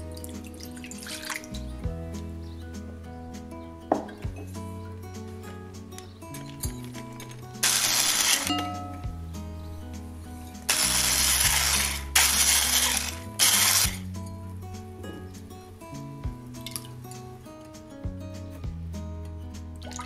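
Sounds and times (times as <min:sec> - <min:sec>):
soft background music: 0:00.0 - 0:20.0
electric whisk running: 0:10.7 - 0:14.0.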